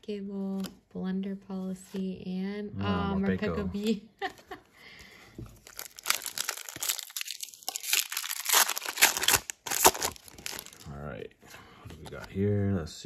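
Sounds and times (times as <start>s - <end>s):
foil wrapper crinkling and tearing: 5.6s - 10.9s.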